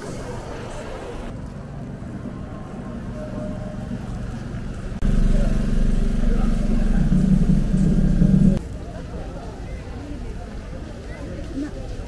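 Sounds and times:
small engine running: 5.0 - 8.6.

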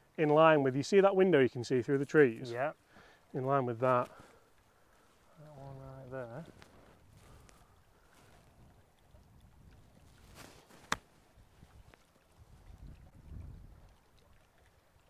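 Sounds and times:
low wind rumble on microphone: 8.3 - 10.4, 11.4 - 14.0
golf club swishing through grass: 10.2 - 11.1.

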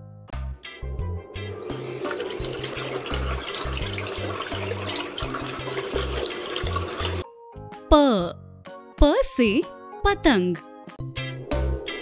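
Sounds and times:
water running from a tap: 1.5 - 7.2.

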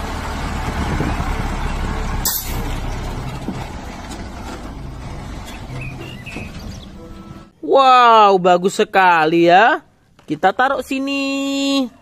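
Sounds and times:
truck engine pulling away: 0.0 - 7.5.

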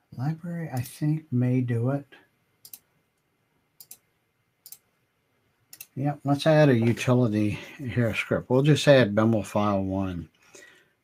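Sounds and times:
computer mouse clicks: 2.6 - 4.9, 5.7 - 6.0.

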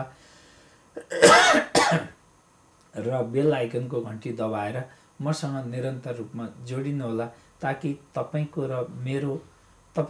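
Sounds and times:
man coughing: 1.0 - 2.2.

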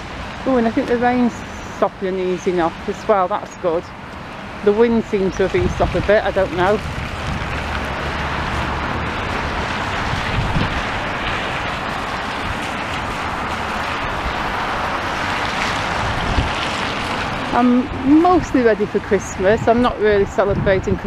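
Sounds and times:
tyres hissing on wet road: 0.0 - 21.0
wind buffeting microphone: 0.0 - 21.0.

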